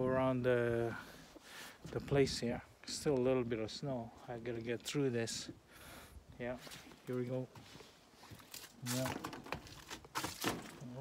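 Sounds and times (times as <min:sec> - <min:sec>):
footsteps crunching through snow: 0:06.5 - 0:10.9.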